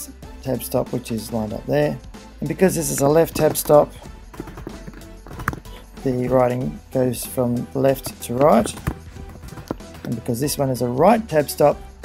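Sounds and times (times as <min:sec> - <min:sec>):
computer keyboard typing: 0:03.4 - 0:05.8, 0:08.0 - 0:10.2.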